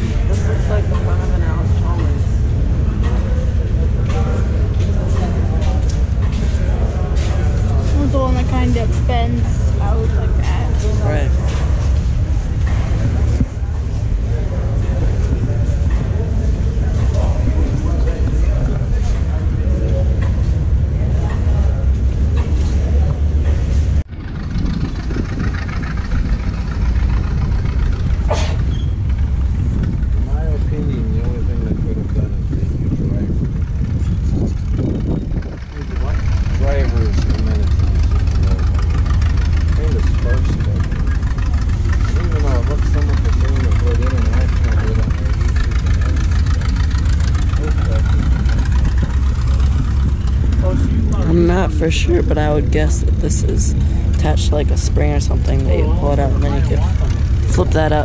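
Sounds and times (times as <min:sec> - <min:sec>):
indistinct voices: 0:00.0 - 0:58.0
steady low rumble: 0:00.0 - 0:58.0.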